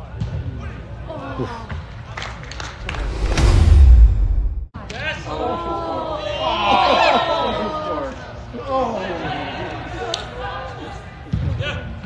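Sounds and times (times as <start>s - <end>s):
whoosh with deep rumble: 2.7s - 4.8s
sharp thuds: 2.8s - 4.8s.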